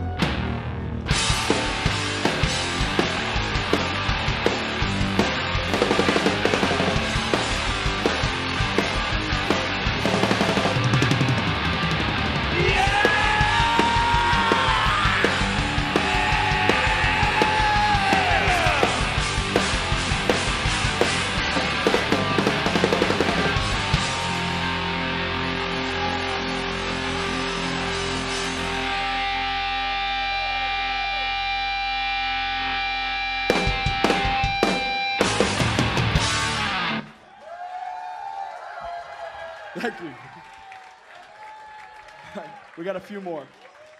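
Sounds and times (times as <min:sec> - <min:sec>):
drum kit: 0:00.0 - 0:25.8, 0:33.4 - 0:37.0
distorted electric guitars: 0:00.0 - 0:37.2.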